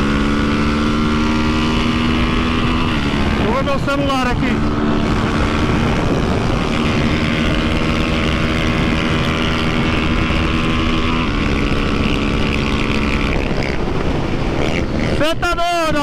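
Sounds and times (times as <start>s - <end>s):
motorcycle engine revving high: 0.0s - 16.0s
wind and road rush: 0.0s - 16.0s.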